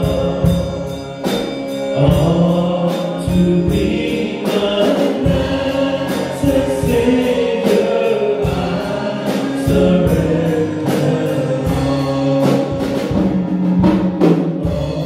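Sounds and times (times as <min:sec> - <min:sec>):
bass: 0:00.0 - 0:15.0
male trio singing in harmony: 0:00.0 - 0:15.0
steady drum beat: 0:00.0 - 0:15.0.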